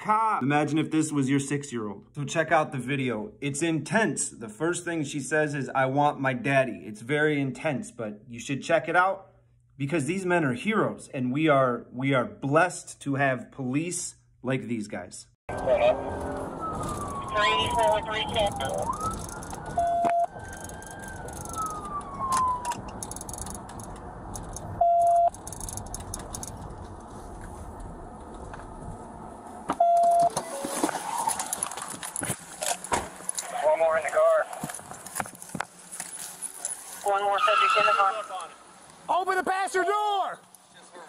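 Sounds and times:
police siren wailing: 0:15.5 - 0:22.9
road and engine noise: 0:15.5 - 0:39.2, 0:40.4 - 0:41.0
short beeps: 0:19.8 - 0:20.3, 0:24.8 - 0:25.4, 0:29.8 - 0:30.8.

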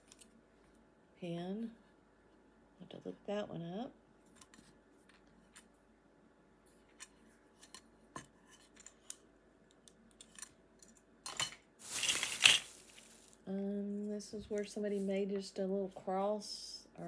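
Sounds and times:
rustle: 0:11.8 - 0:13.5.

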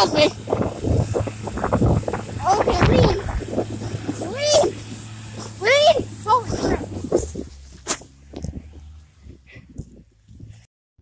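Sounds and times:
low hum: 0:00.0 - 0:10.7.

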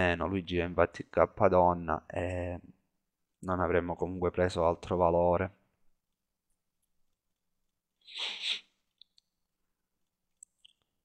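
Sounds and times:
breath noise: 0:08.0 - 0:08.8.

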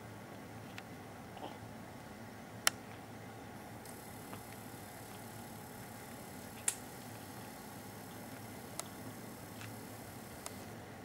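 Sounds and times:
room hiss: 0:00.0 - 0:11.0.

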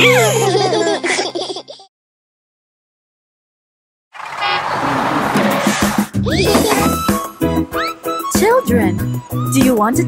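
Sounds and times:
cartoon children laughing: 0:00.0 - 0:01.9, 0:06.2 - 0:07.1.

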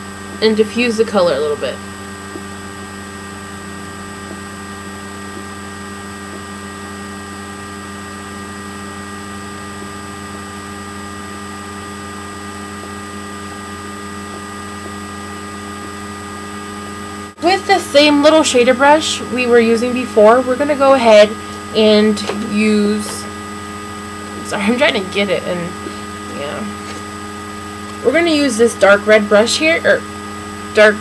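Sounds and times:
electrical hum and hiss: 0:00.0 - 0:31.0
high whining tones: 0:00.0 - 0:31.0.

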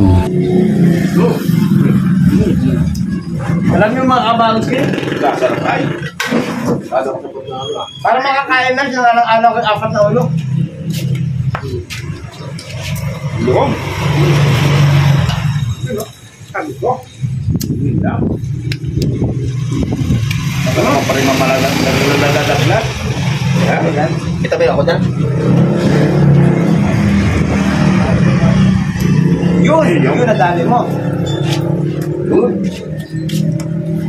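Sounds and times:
vehicle engine running: 0:00.0 - 0:05.8
motor vehicle passing: 0:00.0 - 0:06.9, 0:10.0 - 0:34.0.

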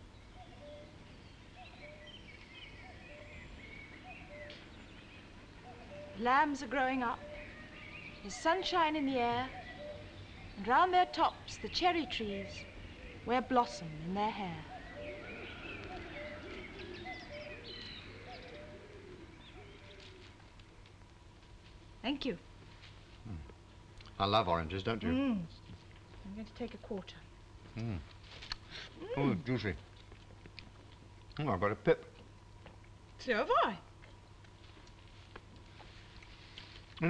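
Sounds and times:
birds chirping: 0:00.0 - 0:22.5
steady low hum: 0:00.0 - 0:37.0.

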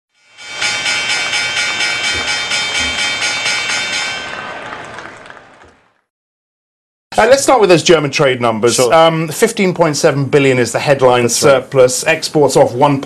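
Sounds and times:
pulsing synthesized chord: 0:00.2 - 0:04.5.

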